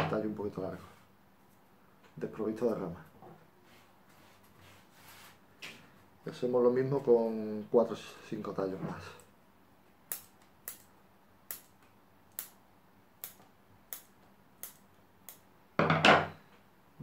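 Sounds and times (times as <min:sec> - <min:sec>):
scissors snipping: 0:10.1 - 0:10.9, 0:11.5 - 0:12.6, 0:13.2 - 0:15.4.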